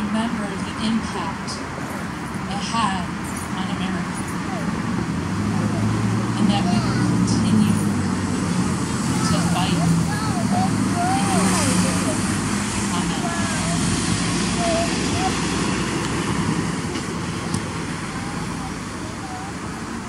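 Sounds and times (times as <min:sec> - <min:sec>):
engine idling: 0:01.8 - 0:20.0.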